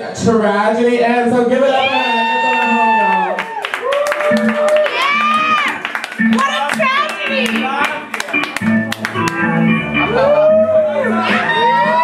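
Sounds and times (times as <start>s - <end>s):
bass line: 4.2s - 12.0s.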